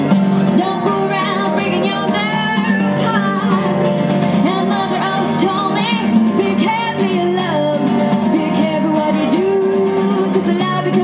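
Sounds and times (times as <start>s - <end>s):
acoustic guitar: 0.0s - 11.0s
woman singing: 0.0s - 11.0s.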